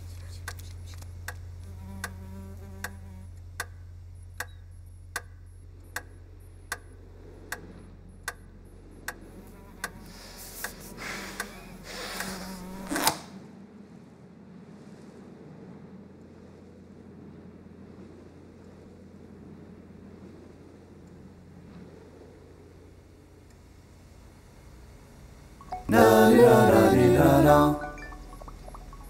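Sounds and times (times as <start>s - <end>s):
steady ticking: 0.0s - 12.4s, 27.8s - 29.0s
low hum: 0.0s - 29.0s.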